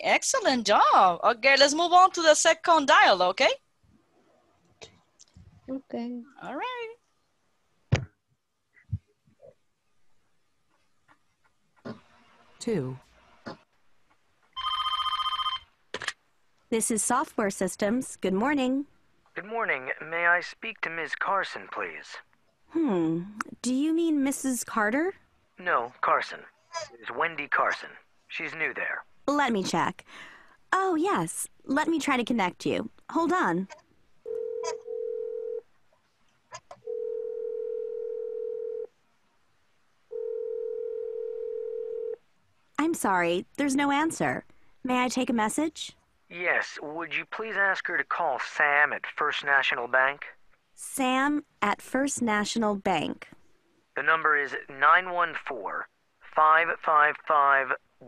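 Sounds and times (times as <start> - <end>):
electronic telephone ring: 14.6 - 15.7, 34.3 - 35.6, 36.8 - 38.9, 40.1 - 42.2.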